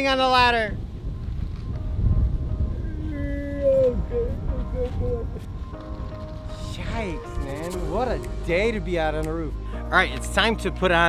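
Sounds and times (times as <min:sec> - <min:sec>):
wind buffeting microphone: 0:00.0 - 0:09.3
background music: 0:00.0 - 0:11.0.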